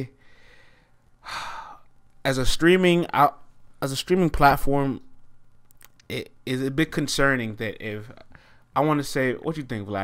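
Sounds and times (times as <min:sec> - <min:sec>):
man breathing in: 0:00.2 - 0:01.9, 0:08.3 - 0:08.7.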